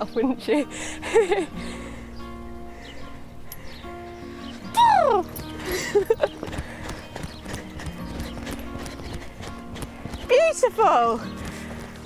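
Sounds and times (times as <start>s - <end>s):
horse trotting on sand: 5.4s - 12.0s.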